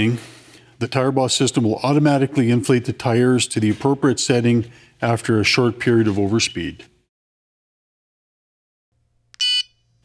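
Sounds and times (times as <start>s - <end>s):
short electronic beep: 9.4s - 9.8s.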